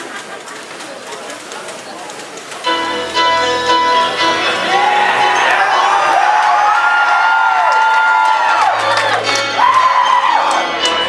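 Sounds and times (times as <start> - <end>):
audience cheering: 4.1 - 11.0
high-pitched whoops: 4.7 - 10.6.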